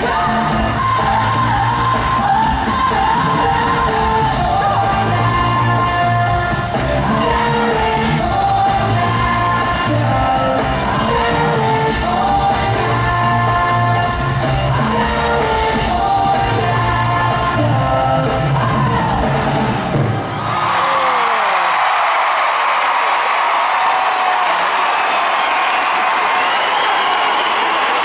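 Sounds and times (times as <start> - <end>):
loud pop music with heavy bass: 0.0 - 20.0
crowd cheering and screaming: 18.7 - 28.0
crowd whoops: 20.0 - 28.0.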